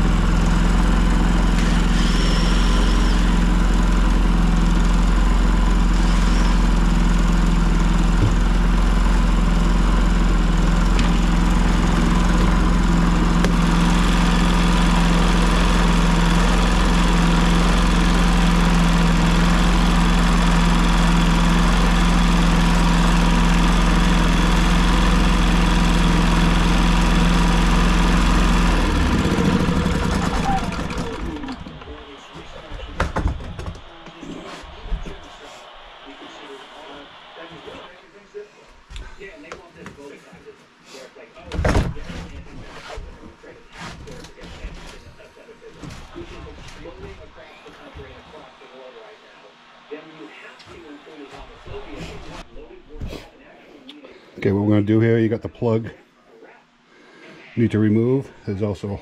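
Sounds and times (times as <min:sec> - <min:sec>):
engine running down to stop: 0:00.0 - 0:33.0
generator engine running: 0:00.0 - 0:38.0.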